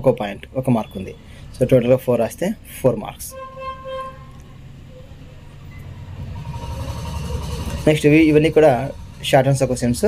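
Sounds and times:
low rumble: 6.0 - 10.0.

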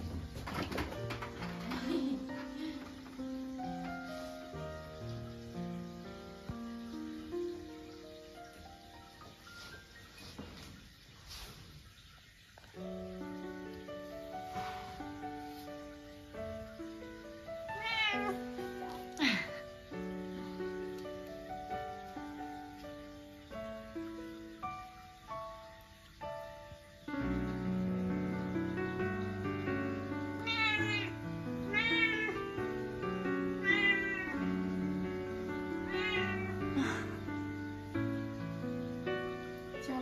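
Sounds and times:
cat meowing: 17.6 - 19.5, 30.4 - 34.7, 35.6 - 37.1.

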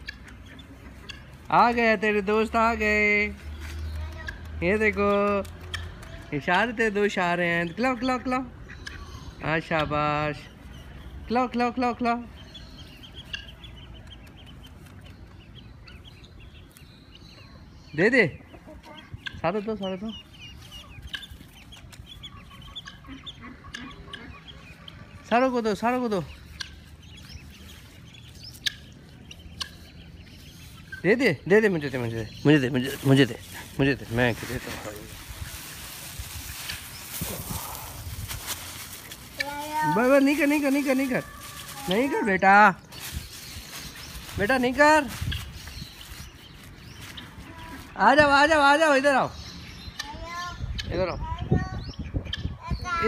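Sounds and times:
hen clucking: 0.0 - 2.6, 7.6 - 16.8, 18.2 - 38.1
chicks and ducklings peeping: 0.0 - 53.0.

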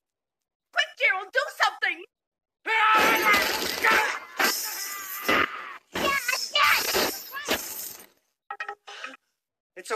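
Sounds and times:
television smashing: 2.9 - 4.8
glass shattering: 3.0 - 8.1.

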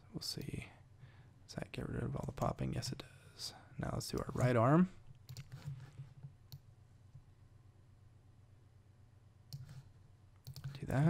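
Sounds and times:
faint low hum: 0.0 - 11.0
computer mouse clicks: 5.1 - 7.2, 9.5 - 11.0.

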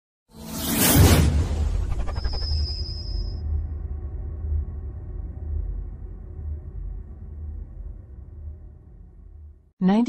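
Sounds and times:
deep low rumble: 3.3 - 9.6.

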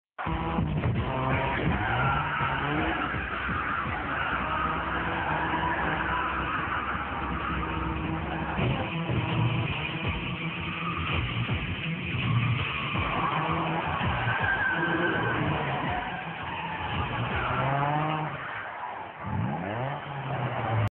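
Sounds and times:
car engine revving: 0.2 - 20.9
tyres squealing: 0.3 - 20.9.

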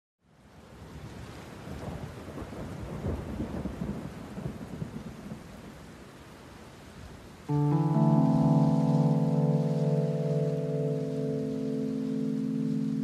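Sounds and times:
steady rain: 0.2 - 13.0
chill electronic music: 7.5 - 13.0.

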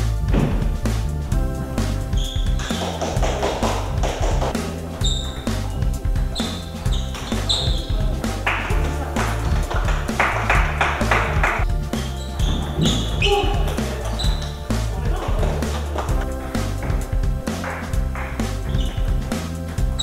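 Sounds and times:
music with repeating bass beat: 0.0 - 20.0.

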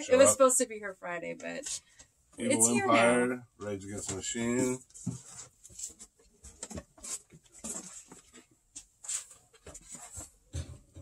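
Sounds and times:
record sleeves rustling and scraping: 3.9 - 11.0.

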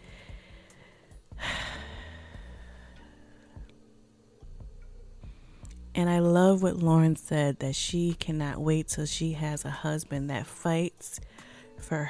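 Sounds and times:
person sighing: 1.4 - 3.1.

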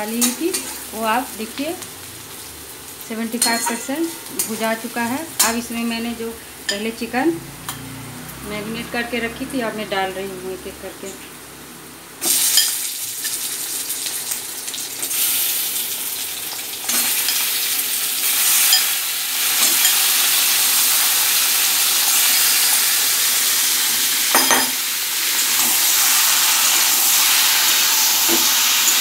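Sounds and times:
chicken sizzling in hot oil: 0.0 - 6.0, 12.2 - 29.0.

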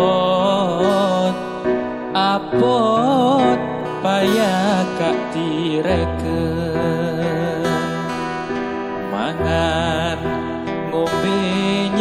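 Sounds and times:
devotional music: 0.0 - 12.0.

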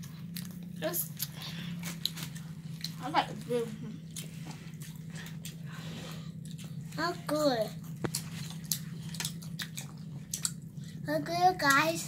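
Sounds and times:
chewing and biting sandwiches: 0.0 - 12.0
steady low hum: 0.0 - 12.0.

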